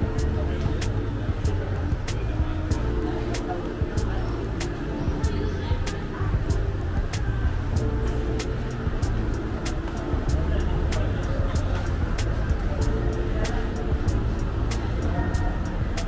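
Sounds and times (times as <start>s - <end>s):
background music: 0.0s - 16.0s
indistinct voices: 0.0s - 16.0s.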